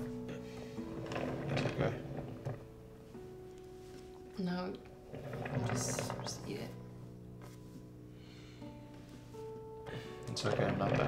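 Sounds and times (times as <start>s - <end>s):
lazy susan bearing rumbling: 0.0s - 7.6s, 9.0s - 11.0s.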